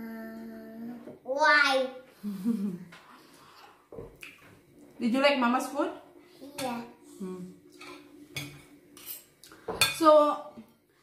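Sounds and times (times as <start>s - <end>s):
cutlery clinking against bowls: 7.7s - 10.2s.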